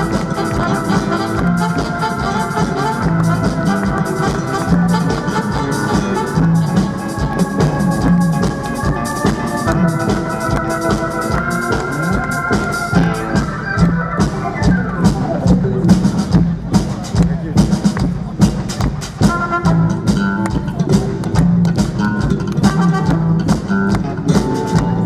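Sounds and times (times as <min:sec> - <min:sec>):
electric guitar: 0:00.0 - 0:16.3, 0:19.2 - 0:25.0
bass guitar: 0:00.0 - 0:25.0
drum kit beat: 0:00.0 - 0:25.0.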